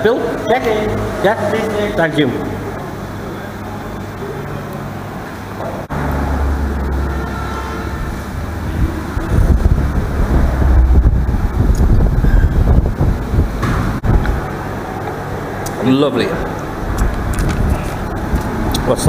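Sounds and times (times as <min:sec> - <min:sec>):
fan air buffeting microphone: 0:00.0 - 0:19.0.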